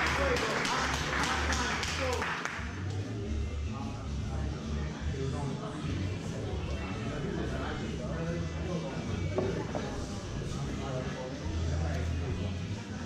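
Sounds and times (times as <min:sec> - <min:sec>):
background music: 0:00.0 - 0:13.0
people talking indistinctly: 0:00.0 - 0:13.0.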